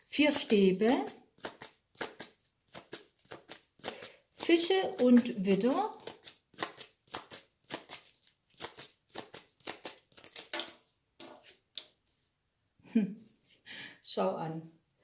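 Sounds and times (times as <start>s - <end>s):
cards being shuffled: 0.4s - 12.1s.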